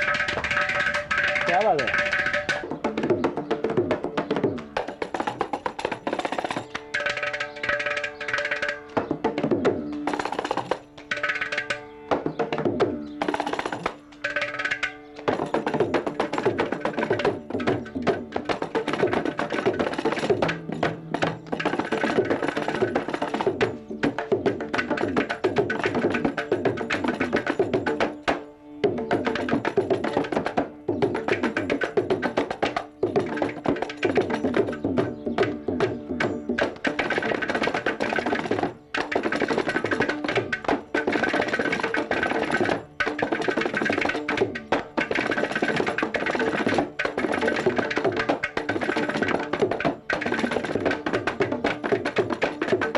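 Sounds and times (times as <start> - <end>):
hand drums and clay pot percussion: 0.0 - 52.9.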